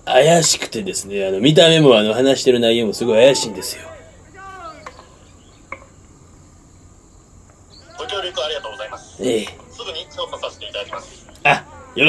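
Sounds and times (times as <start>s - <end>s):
insects chirring: 0.0s - 12.0s
faint voice: 3.0s - 5.0s.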